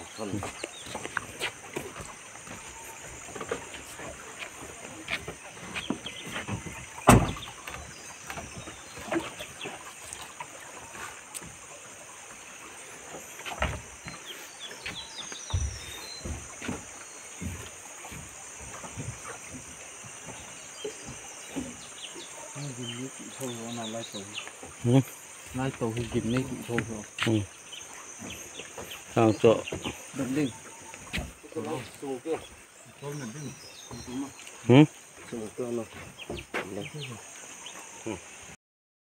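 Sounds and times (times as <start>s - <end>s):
high insect drone: 0.0s - 38.6s
wooden planks knocking: 13.4s - 14.2s.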